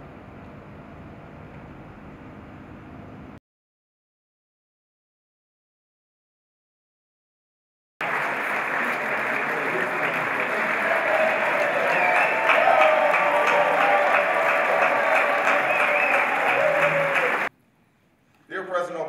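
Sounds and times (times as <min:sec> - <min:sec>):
audience applauding: 0:08.0 - 0:17.5.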